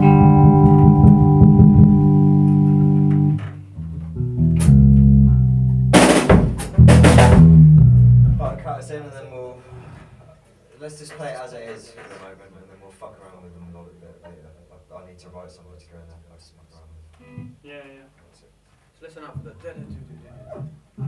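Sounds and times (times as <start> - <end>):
electric guitar chord: 0.0 - 5.6
guitar and bass notes: 0.0 - 8.9
drum kit crashes: 5.8 - 8.7.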